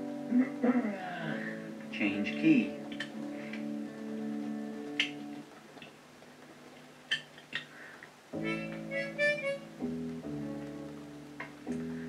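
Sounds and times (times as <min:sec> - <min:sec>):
guitar chord ringing: 0:08.4 - 0:12.0.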